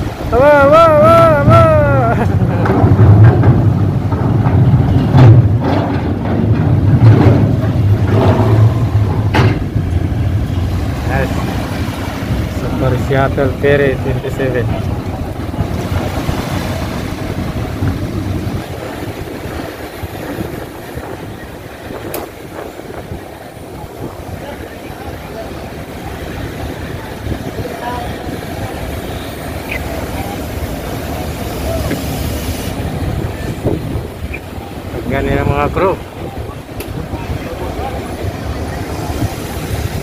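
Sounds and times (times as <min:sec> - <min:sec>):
heavy machinery rumbling: 0:00.0 - 0:40.0
outdoor noise: 0:00.0 - 0:40.0.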